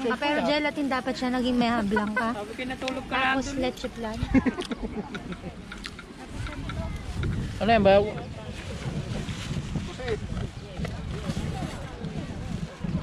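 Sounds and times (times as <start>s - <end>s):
faint voices talking: 0.0s - 13.0s
wind buffeting microphone: 0.0s - 13.0s.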